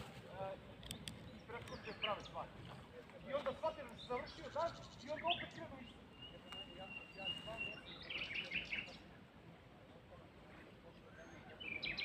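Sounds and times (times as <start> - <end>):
faint distant high-pitched voices: 5.4 - 12.0.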